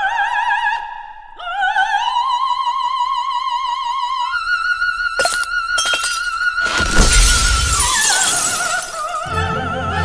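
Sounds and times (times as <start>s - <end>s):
operatic soprano singing: 0.0s - 10.0s
glass shattering: 5.2s - 9.2s.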